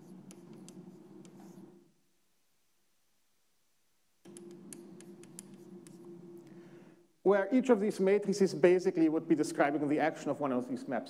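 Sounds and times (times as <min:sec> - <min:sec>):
chalk tapping and scratching: 0:00.0 - 0:01.8, 0:04.3 - 0:06.2.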